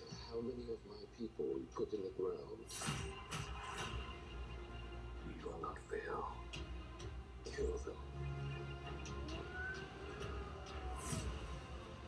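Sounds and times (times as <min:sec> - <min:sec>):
trailer music from tv: 0:00.0 - 0:12.0.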